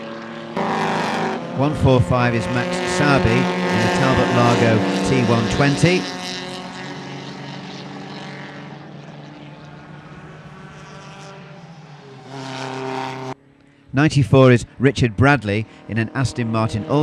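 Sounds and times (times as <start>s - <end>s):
another car engine: 0.0s - 17.0s
car engine passing by: 0.1s - 13.9s.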